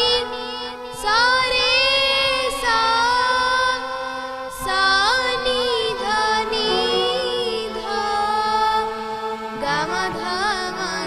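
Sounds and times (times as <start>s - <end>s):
girl singing: 0.0s - 3.9s, 4.5s - 8.9s, 9.6s - 11.0s
harmonium drone: 0.0s - 11.0s.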